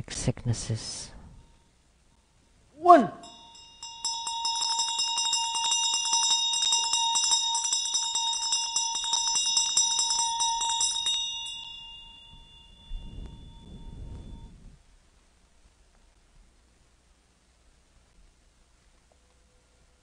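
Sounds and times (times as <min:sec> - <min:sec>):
hand bell rung rapidly: 0:03.2 - 0:14.4.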